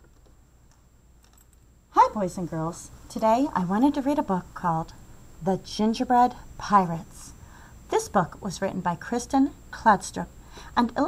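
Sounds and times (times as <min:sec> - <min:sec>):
woman's voice: 0:01.9 - 0:11.0.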